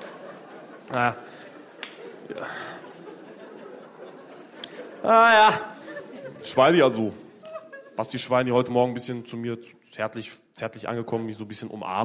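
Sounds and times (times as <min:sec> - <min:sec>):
audience laughter: 0:00.0 - 0:08.5.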